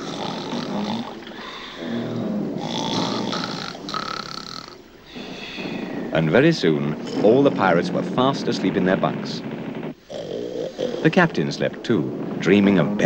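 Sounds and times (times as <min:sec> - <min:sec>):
cartoon snoring with whistle: 0:00.0 - 0:06.0, 0:10.1 - 0:11.2.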